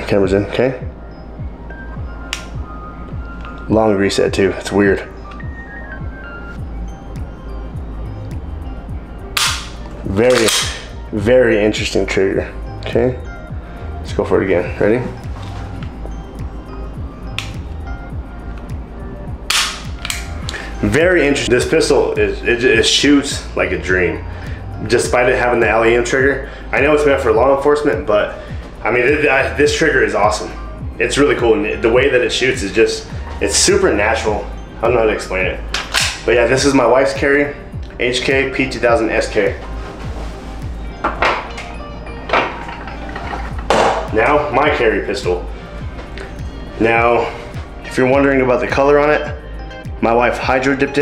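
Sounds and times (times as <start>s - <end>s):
background music with steady beat: 0.0s - 51.0s
pistol hammer click: 9.4s - 10.9s, 19.5s - 20.3s, 35.8s - 36.2s.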